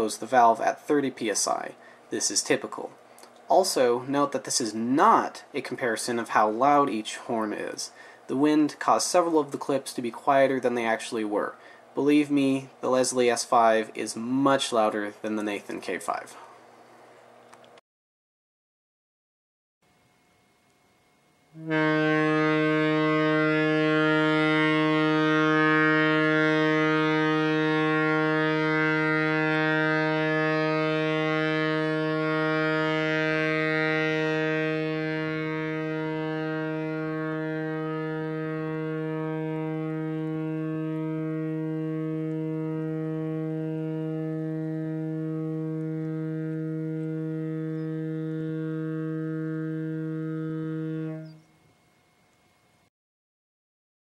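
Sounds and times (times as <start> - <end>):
locomotive air horn blast: 21.5 - 51.4.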